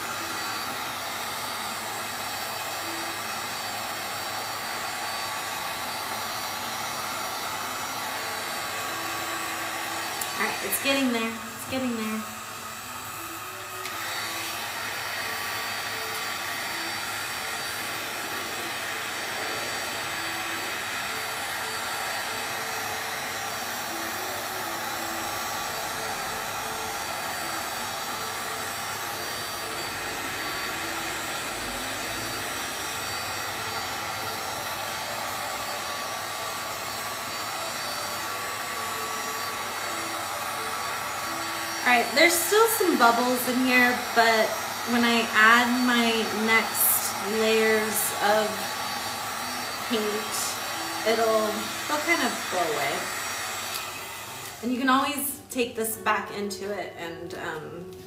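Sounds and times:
heat gun whirring hiss: 0.0s - 56.0s.

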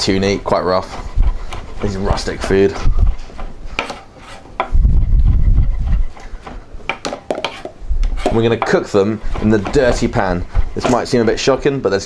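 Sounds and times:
knife chopping on cutting board: 3.8s - 4.7s, 6.4s - 9.9s.

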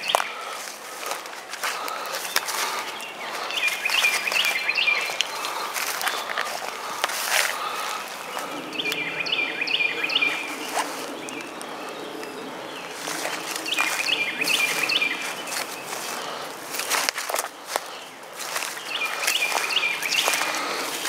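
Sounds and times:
footsteps: 0.0s - 9.1s, 10.2s - 21.0s
outdoor ambience: 0.0s - 21.0s
songbird chirping: 0.0s - 21.0s.

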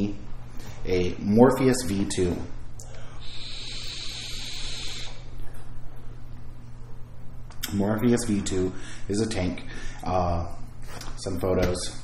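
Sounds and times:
vape hissing when inhaled: 3.2s - 5.3s.

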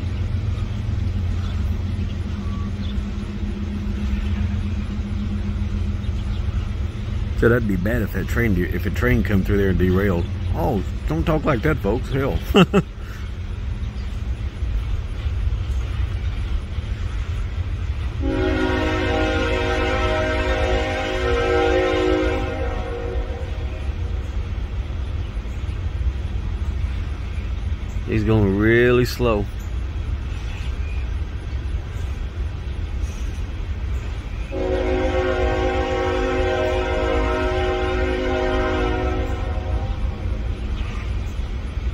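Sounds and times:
locomotive rumbling: 0.0s - 41.9s
train horn chord: 18.2s - 24.3s, 34.4s - 40.6s.

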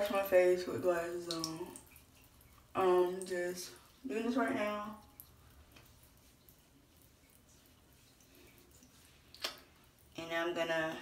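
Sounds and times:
soft water drips: 0.0s - 11.0s.

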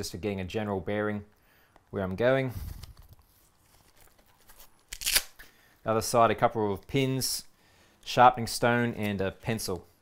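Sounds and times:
fabric pouch handling noise: 2.5s - 5.3s.

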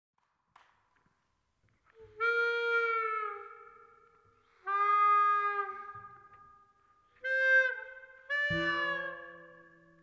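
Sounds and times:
harmonica long held notes: 7.2s - 9.9s.

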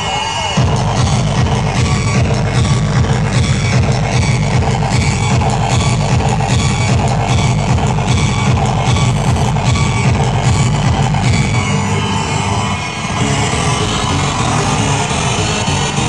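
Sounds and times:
loud electronic dance music: 0.0s - 16.0s.

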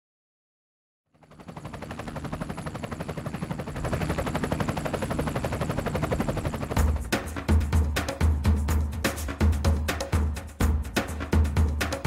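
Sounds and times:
helicopter rotor blades chopping: 1.1s - 8.4s.

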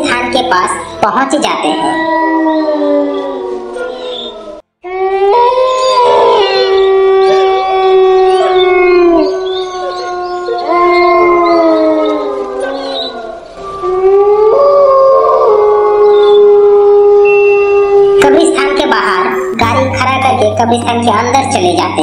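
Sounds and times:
dogs howling: 1.6s - 18.2s.

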